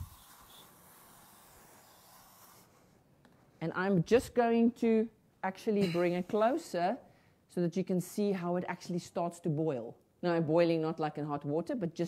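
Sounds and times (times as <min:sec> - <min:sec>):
aerosol can spraying: 0:00.0 - 0:02.7.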